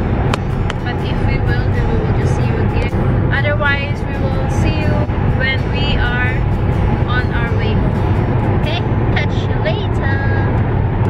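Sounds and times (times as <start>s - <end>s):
car cabin rumble: 0.0s - 11.0s
woman singing with music: 0.7s - 10.6s.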